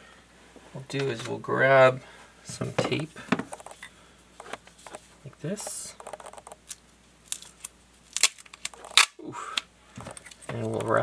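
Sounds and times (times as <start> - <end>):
tape clicks and crackles: 3.4 - 5.0, 5.6 - 11.0.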